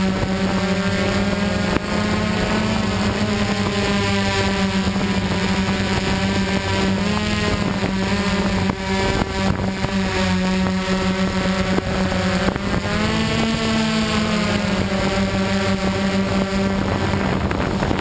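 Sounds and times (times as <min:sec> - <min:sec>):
drone motors buzzing: 0:00.0 - 0:18.0.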